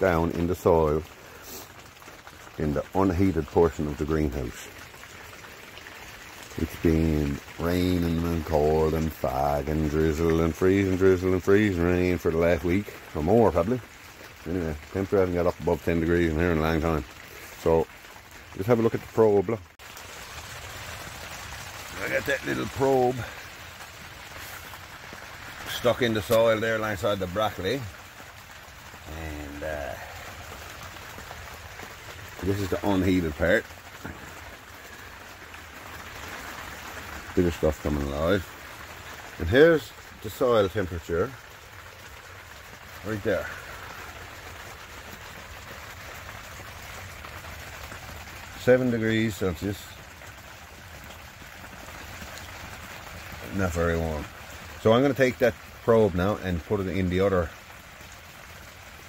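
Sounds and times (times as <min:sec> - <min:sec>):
light rain hissing: 0:00.0 - 0:59.0.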